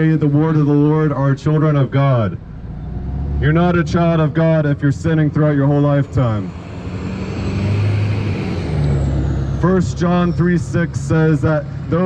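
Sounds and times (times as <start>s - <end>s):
pickup truck driving past: 2.4s - 12.0s.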